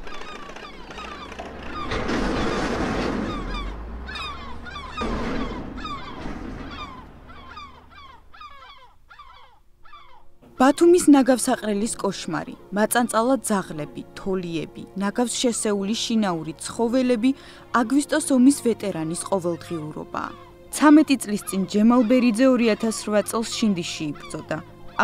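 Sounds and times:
gulls calling: 0.0s - 13.7s, 15.7s - 25.0s.

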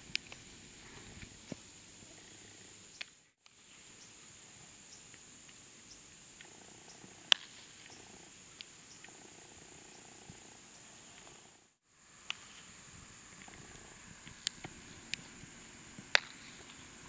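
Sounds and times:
faint outdoor ambience: 0.0s - 17.0s
high-pitched insect drone: 3.9s - 17.0s
sharp crack: 7.3s - 7.7s, 16.0s - 16.9s.

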